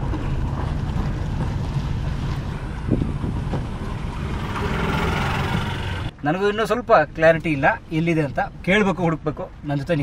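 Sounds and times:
wind noise on microphone: 0:00.0 - 0:06.1
vehicle rumbling on unpaved road: 0:00.0 - 0:10.0.

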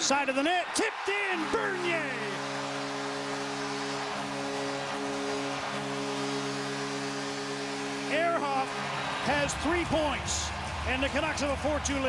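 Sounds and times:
arena goal horn: 0:00.0 - 0:11.5
crowd cheering: 0:00.0 - 0:12.0.

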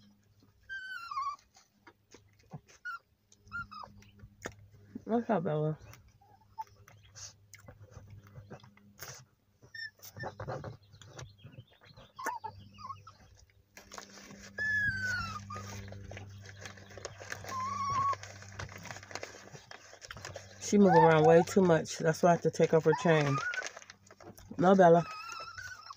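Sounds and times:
small dog whining: 0:00.0 - 0:01.8, 0:02.7 - 0:04.3, 0:06.1 - 0:07.3, 0:08.4 - 0:25.9
plastic bag crinkling: 0:13.7 - 0:25.9.

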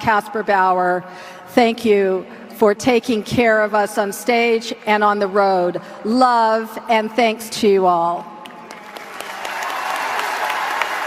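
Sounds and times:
woman speaking: 0:00.0 - 0:08.3
audience applause: 0:08.6 - 0:11.0.

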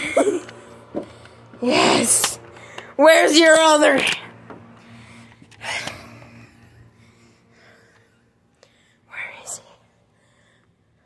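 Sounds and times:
person whispering: 0:09.1 - 0:10.0.

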